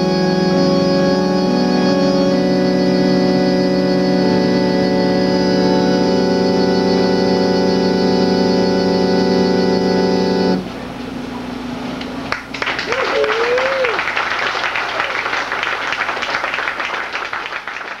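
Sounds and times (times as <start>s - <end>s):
organ chord: 0.0s - 12.6s
audience applause: 12.3s - 18.0s
wavering whoop: 12.8s - 14.1s.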